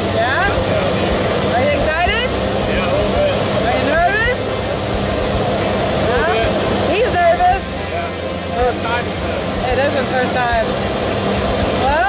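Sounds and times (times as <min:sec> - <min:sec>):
airplane engine and propeller droning: 0:00.0 - 0:12.0.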